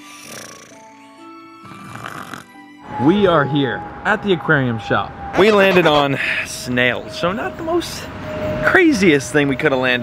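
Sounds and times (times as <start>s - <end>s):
snoring sound effect: 0.0s - 1.0s, 1.6s - 2.6s.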